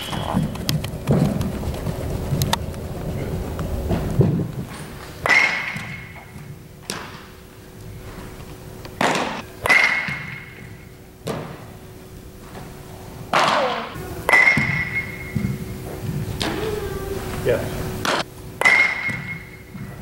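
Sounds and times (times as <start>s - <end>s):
bat cracking baseball: 5.1s - 7.4s, 9.0s - 11.7s, 13.3s - 16.6s, 18.0s - 19.5s.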